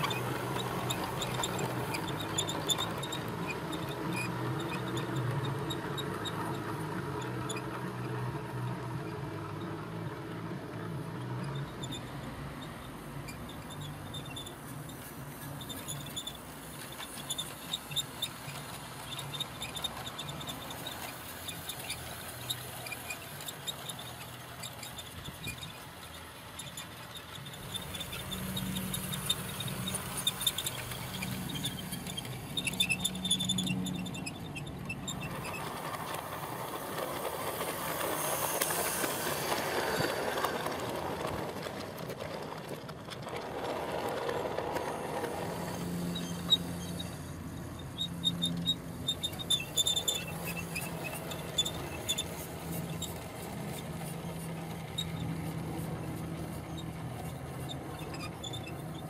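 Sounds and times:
model train motor hum: 0.0 - 59.0
wheels clicking over rails: 0.0 - 59.0.

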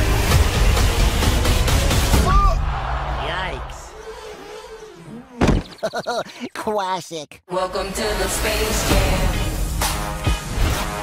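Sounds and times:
trailer music: 0.0 - 2.8, 7.5 - 11.0.

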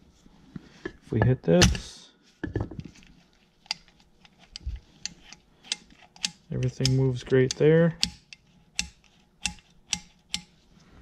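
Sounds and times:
metal linkage clicks: 4.5 - 10.5.

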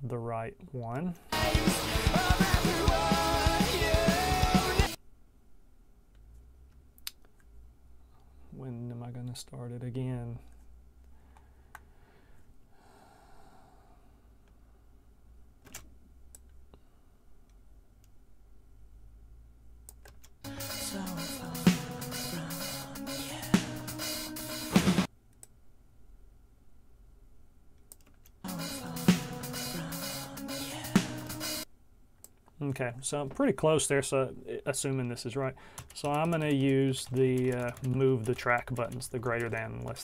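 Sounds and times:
drum kit and cymbals with music: 1.3 - 5.0, 20.5 - 25.1, 28.5 - 31.7.

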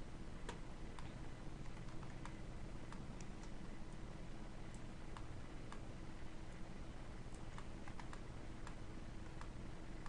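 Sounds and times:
low electrical hum: 0.0 - 10.0
keyboard clicks: 0.5 - 3.6, 7.3 - 9.6
computer mouse clicks: 0.5 - 4.0, 4.7 - 5.9, 7.3 - 9.6.

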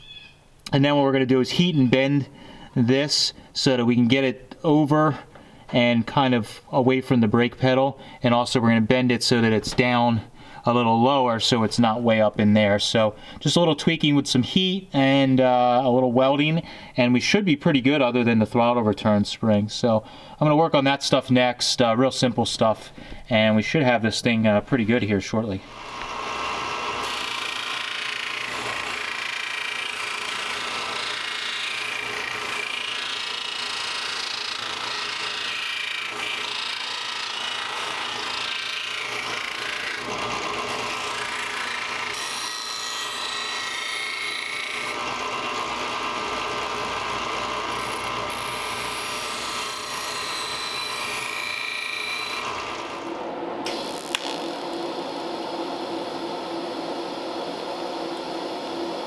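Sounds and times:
disc sander grinding steel: 25.6 - 54.7
welding arc hiss and buzz: 53.0 - 59.0.

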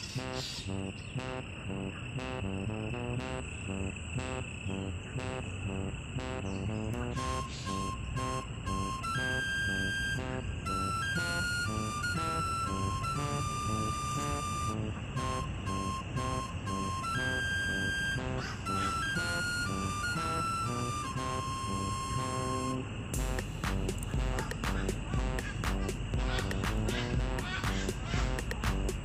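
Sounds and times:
bright simple background tune: 6.2 - 29.0.

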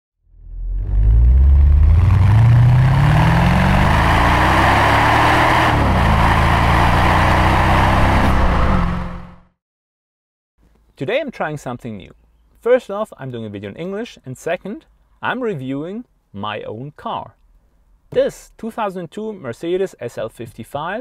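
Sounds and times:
car engine accelerating hard: 0.4 - 9.4
road and wind noise: 0.4 - 9.4.

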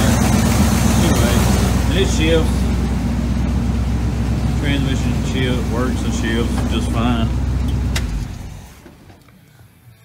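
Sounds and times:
engine idle dying: 0.0 - 8.9.

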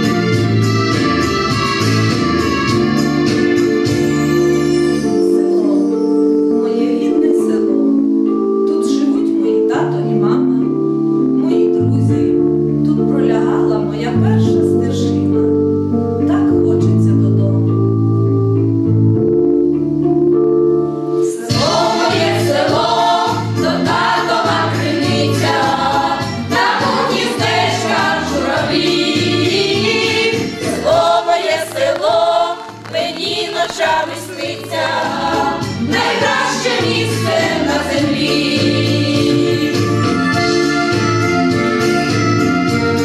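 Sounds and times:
instrumental backing music: 0.0 - 43.0
women's choir singing: 21.4 - 40.2.

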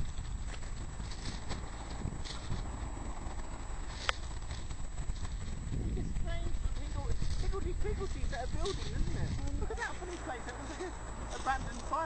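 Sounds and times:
footsteps crunching on shingle: 0.0 - 12.0
wind rumbling on microphone: 0.0 - 12.0
indistinct voices talking: 0.9 - 12.0.

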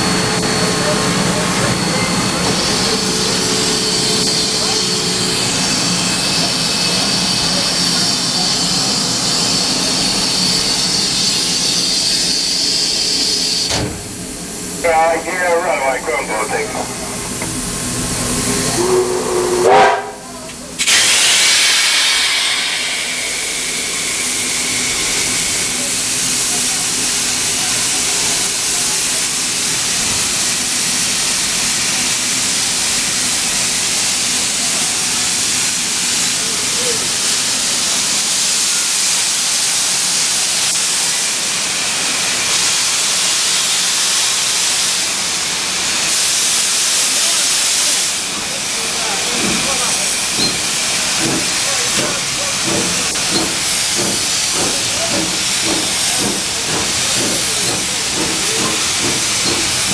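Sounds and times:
steam hissing: 0.0 - 59.9
steam locomotive whistle: 18.5 - 25.6.

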